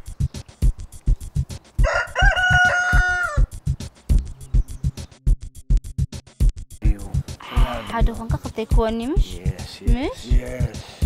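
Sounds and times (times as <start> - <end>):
background music with beat: 0.0 - 11.0
rooster crowing: 1.8 - 3.6.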